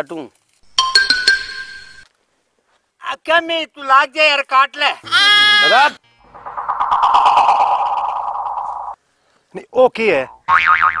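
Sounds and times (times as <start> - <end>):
buzzing warbling sound: 6.2 - 9.0.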